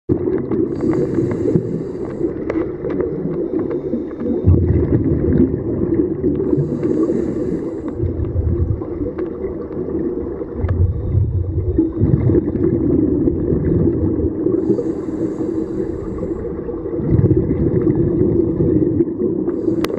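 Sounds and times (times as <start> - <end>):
exhaled bubbles rumbling: 0.1 - 19.9
low underwater rumble: 0.1 - 19.9
diver inhaling through regulator: 0.6 - 2.7, 3.3 - 4.5, 6.3 - 8.3, 14.4 - 16.7, 19.4 - 19.9.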